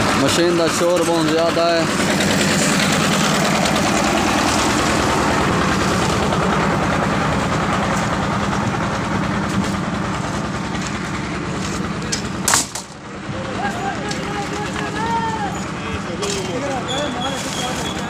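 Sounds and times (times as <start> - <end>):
voices: 0.0 - 6.2, 10.8 - 18.0
diesel engine driving concrete mixer: 0.0 - 18.0.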